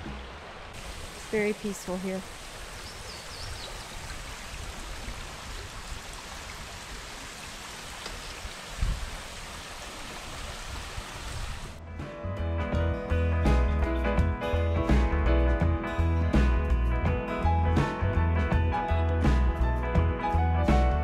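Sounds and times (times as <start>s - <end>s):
creek water rushing over rocks: 0.0s - 11.8s
background music: 11.8s - 21.0s.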